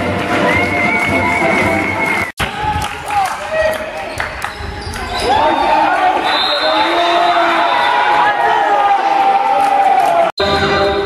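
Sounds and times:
spectators shouting: 5.2 - 10.3.

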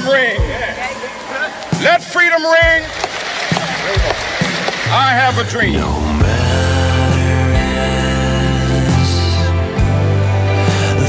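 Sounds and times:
band music: 0.0 - 11.0
crowd cheering and applauding: 0.4 - 7.6
low drum thumps: 2.6 - 8.0
sustained bass note: 4.9 - 9.3.

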